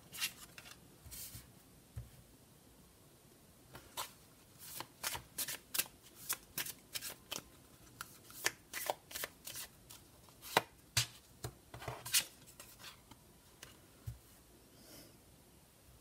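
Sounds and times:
cards being shuffled: 3.8s - 11.2s.

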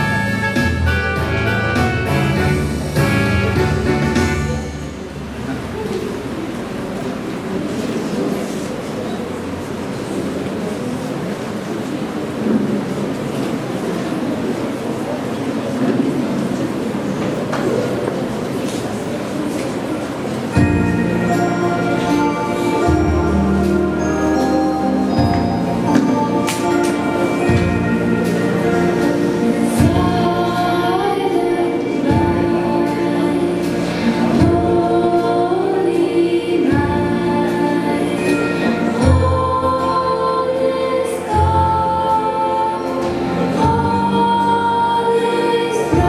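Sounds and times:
instrumental accompaniment: 0.0s - 5.2s, 20.5s - 46.0s
muffled children's choir singing: 0.0s - 46.0s.

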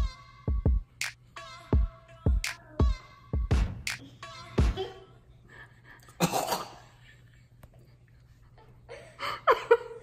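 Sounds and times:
man clearing throat: 6.2s - 6.9s.

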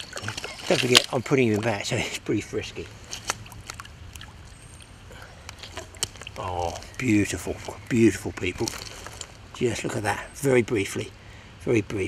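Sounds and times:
water splashing and dripping: 0.0s - 1.8s, 3.0s - 7.0s.

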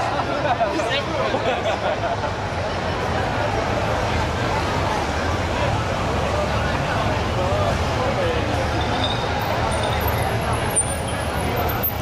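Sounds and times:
crowd chatter: 0.0s - 12.0s
police motorcycle engines rumbling: 0.0s - 12.0s.

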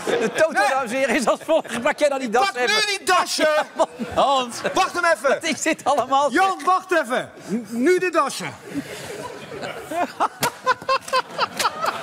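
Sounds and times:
men laughing and calling out: 0.0s - 5.5s, 8.5s - 12.0s.

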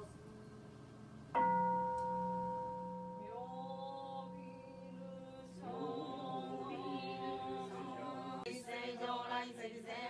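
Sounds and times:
bowl bell ringing: 1.4s - 6.2s
voices chanting: 4.2s - 10.0s.

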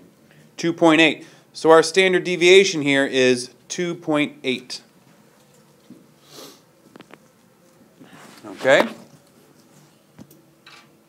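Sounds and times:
man sniffing: 6.2s - 6.7s.

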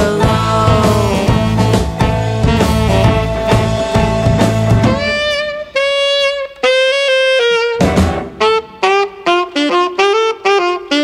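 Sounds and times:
clarinet playing short notes: 1.0s - 11.0s.

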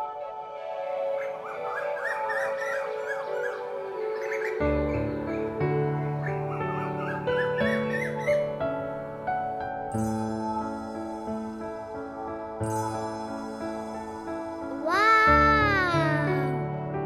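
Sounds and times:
birds chirping: 1.1s - 9.1s.

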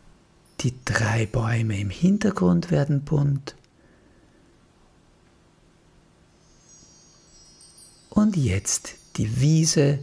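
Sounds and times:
high shimmering magic chime: 6.3s - 10.0s.

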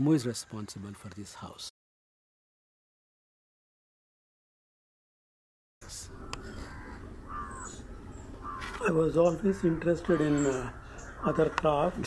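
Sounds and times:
low outdoor background: 0.0s - 1.7s, 5.8s - 12.0s
crow cawing: 6.1s - 12.0s.

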